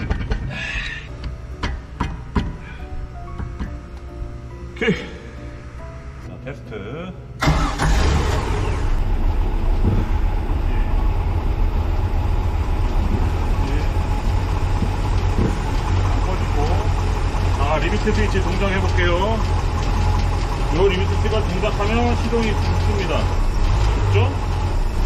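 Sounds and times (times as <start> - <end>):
soft background music: 0.0 - 25.0
boat engine idling: 7.5 - 25.0.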